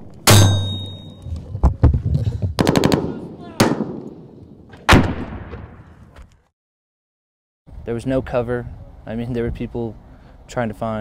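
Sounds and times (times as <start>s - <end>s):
gunshots: 2.6s - 6.0s
heavy echoing gun reports: 2.6s - 6.0s.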